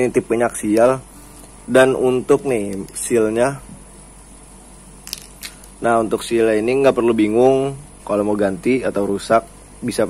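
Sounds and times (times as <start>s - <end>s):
background hiss: 0.0s - 10.0s
handling noise: 2.4s - 5.8s.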